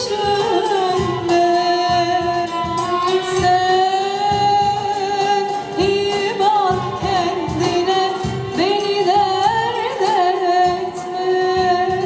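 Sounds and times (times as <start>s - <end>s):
instrumental accompaniment: 0.0s - 12.0s
woman singing: 0.0s - 12.0s.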